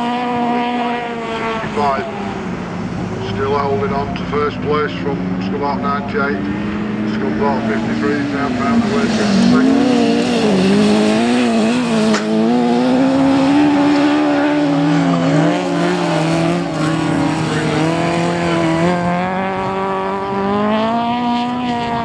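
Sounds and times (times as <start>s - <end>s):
race car engines revving: 0.0s - 22.0s.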